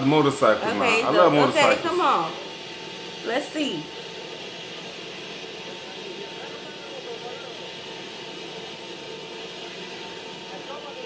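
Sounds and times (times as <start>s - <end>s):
faint steady engine noise: 0.0s - 11.0s
low murmur of voices: 0.0s - 11.0s.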